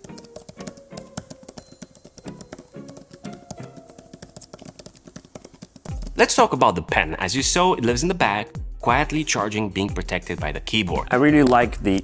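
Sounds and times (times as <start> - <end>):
tablet keyboard key clicks: 0.0 - 6.2
background music: 0.0 - 12.0.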